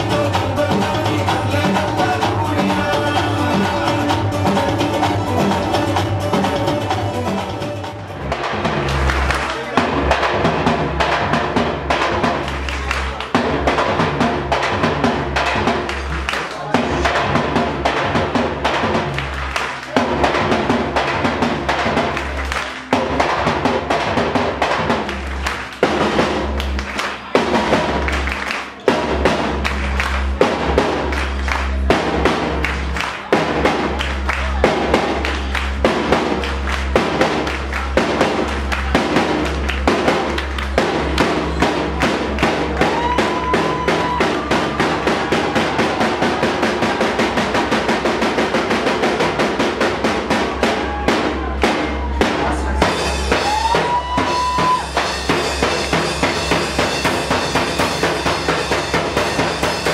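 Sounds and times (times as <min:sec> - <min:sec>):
drum kit snare and cymbals: 0:00.0 - 0:59.9
electronic club music: 0:00.0 - 0:59.9.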